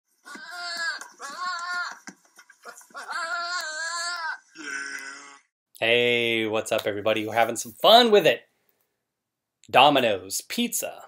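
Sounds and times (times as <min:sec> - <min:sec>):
wavering bleating calls: 0:00.2 - 0:02.0, 0:03.0 - 0:05.5.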